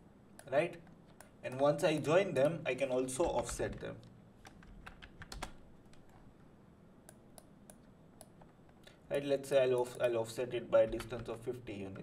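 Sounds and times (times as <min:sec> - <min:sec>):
faint keyboard typing: 0:00.4 - 0:06.3, 0:09.6 - 0:11.4.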